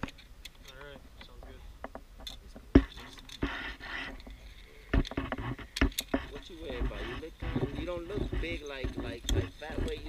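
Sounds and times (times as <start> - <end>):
metal clicks and clanks: 0.0 - 3.5, 4.2 - 10.0.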